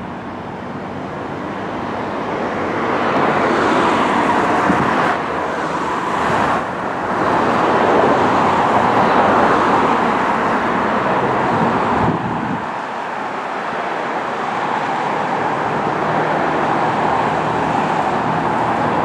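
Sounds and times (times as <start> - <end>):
road traffic rushing: 0.0 - 19.0.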